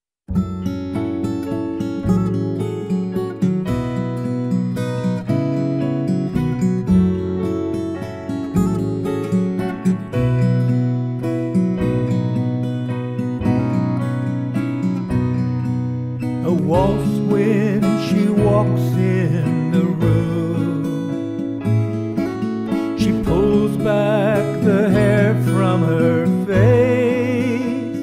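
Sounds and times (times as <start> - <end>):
strummed acoustic guitar: 0.3 - 28.0.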